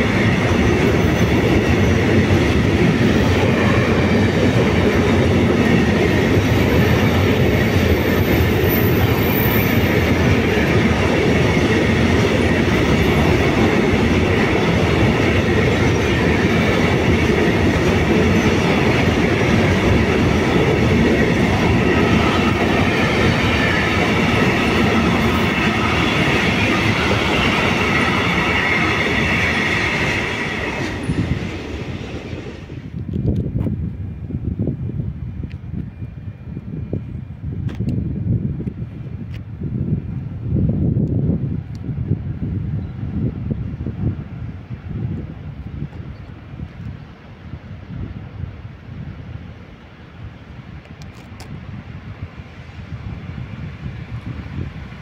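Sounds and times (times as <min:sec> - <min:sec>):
freight train wheels on rails: 0:00.0 - 0:55.0.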